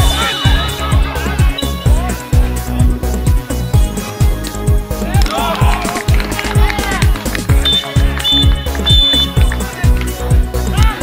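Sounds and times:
upbeat dance music: 0.0s - 11.0s.

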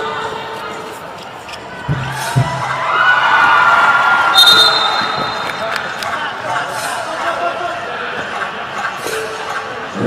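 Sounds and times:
crowd shouting and cheering: 0.0s - 10.0s
short shrill whistle: 4.3s - 5.4s.

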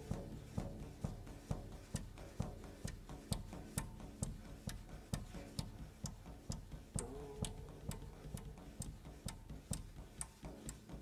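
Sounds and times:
drum kit played with sticks: 0.0s - 11.0s.

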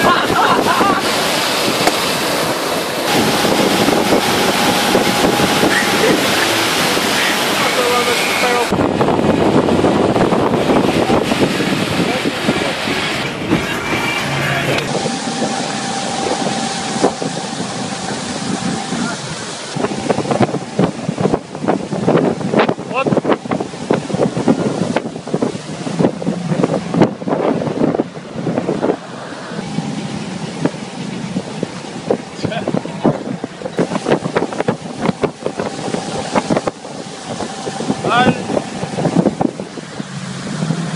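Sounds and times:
motorboat engine running: 0.0s - 40.9s
water churning: 0.0s - 40.9s
wind buffeting microphone: 0.0s - 40.9s.

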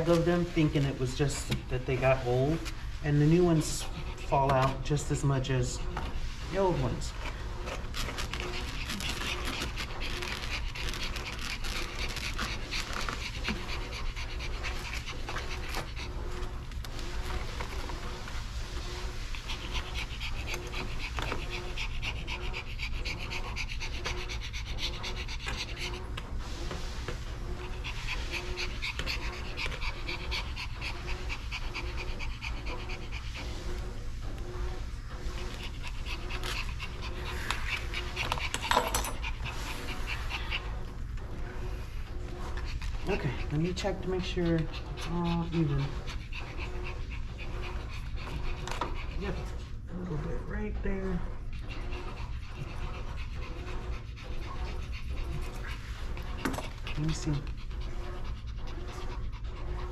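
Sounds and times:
dog panting: 0.0s - 59.9s
low background hum: 0.0s - 59.9s.

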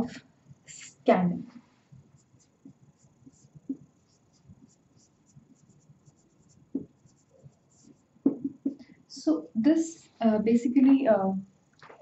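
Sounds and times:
marker squeaking on whiteboard: 2.2s - 8.8s.

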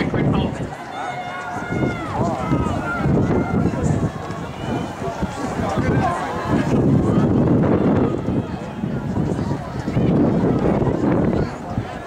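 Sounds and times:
outdoor background noise: 0.0s - 12.0s
spectators shouting: 0.0s - 12.0s.

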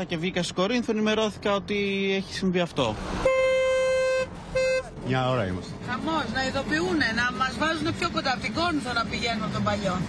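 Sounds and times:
vehicle horn honking: 3.2s - 5.0s.

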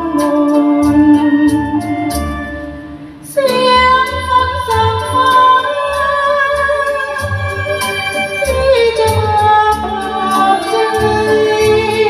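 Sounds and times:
karaoke backing track: 0.0s - 12.0s
woman singing a ballad: 3.3s - 12.0s.

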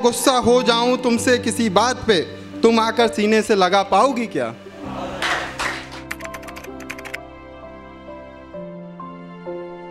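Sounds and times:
soft background music: 0.0s - 9.9s
keyboard typing clicks: 6.0s - 7.2s.

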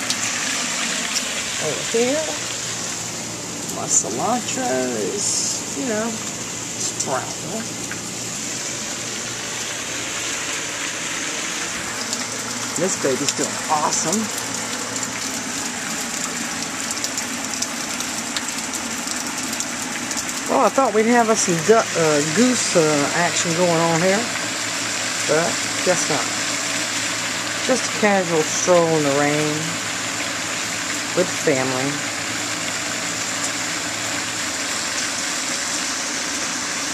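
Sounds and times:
steady rain falling: 0.0s - 36.9s.

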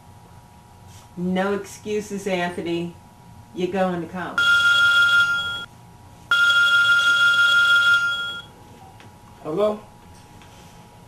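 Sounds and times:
phone ringing: 4.4s - 5.7s, 6.3s - 8.5s.

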